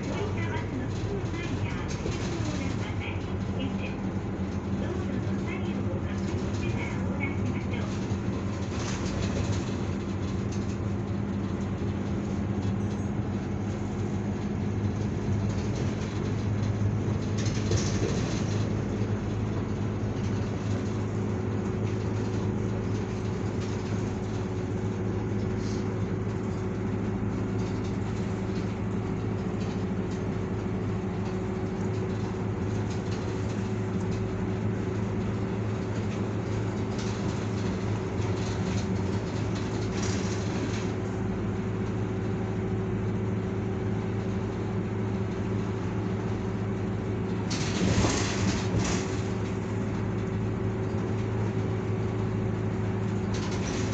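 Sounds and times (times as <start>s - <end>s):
bus engine drone: 0.0s - 53.9s
tyre and road rumble: 0.0s - 53.9s.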